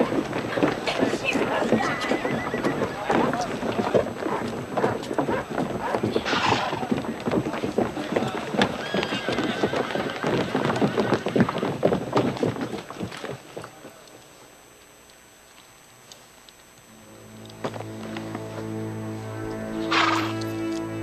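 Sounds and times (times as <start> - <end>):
crowd voices: 0.0 - 4.8
horse hooves clopping on street: 0.0 - 14.5
horse neighing: 1.4 - 3.9, 8.7 - 11.6, 19.9 - 20.4.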